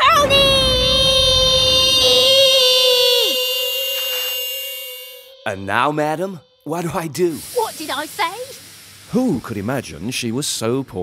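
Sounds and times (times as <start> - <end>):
girl screaming: 0.0 - 4.0
pitched tone sliding down: 0.0 - 7.4.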